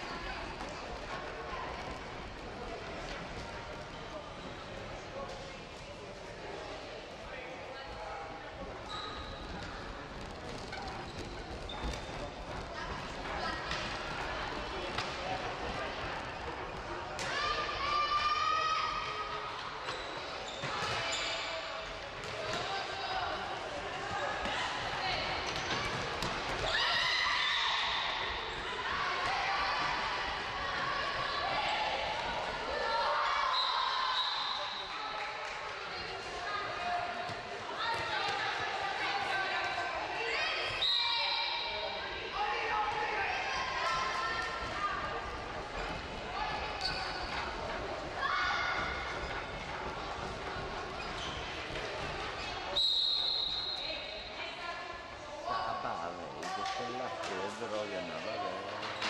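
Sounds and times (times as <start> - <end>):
girls shouting in echoing hall: 17.2 - 19.3, 24.2 - 34.4.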